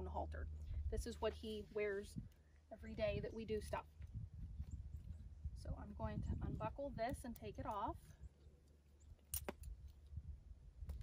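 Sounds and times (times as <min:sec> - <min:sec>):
metal buckle clicking: 0:09.2 - 0:10.0.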